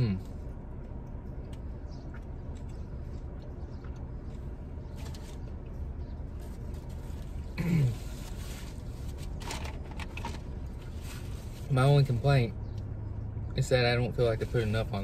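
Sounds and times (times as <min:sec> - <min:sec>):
low hum inside car: 0:00.0 - 0:15.0.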